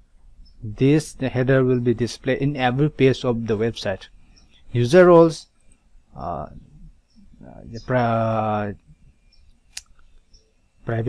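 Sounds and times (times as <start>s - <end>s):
man speaking: 0.6s - 4.1s, 4.7s - 5.5s, 6.1s - 6.7s, 7.4s - 8.8s.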